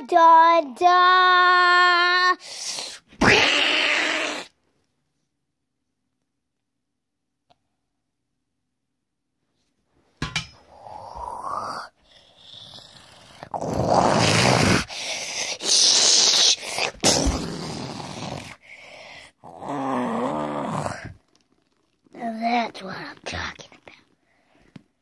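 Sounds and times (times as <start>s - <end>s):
person voicing monster roars: 3.2s - 4.6s, 10.7s - 18.6s, 19.4s - 21.2s.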